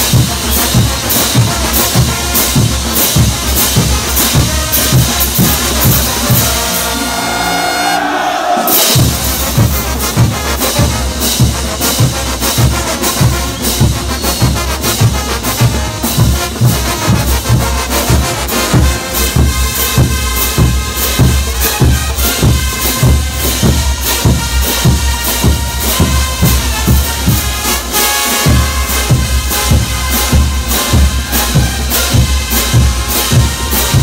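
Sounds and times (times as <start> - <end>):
bass drums and crash cymbals: 0.0 - 7.7, 8.6 - 34.0
brass band playing: 0.0 - 34.0.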